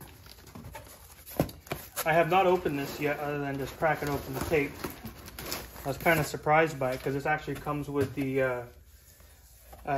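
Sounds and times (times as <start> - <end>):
cardboard flaps rustling: 0.0 - 8.7.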